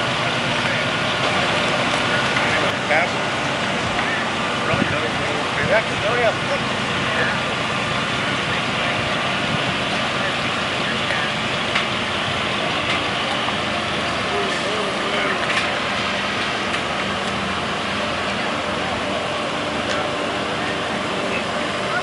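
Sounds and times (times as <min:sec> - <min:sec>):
engine running with low hum: 0:00.0 - 0:22.0.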